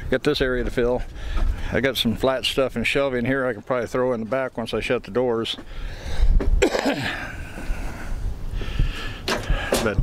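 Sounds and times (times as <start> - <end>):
heavy breathing: 1.0 - 1.8, 5.6 - 10.0
man coughing hard: 6.6 - 7.3.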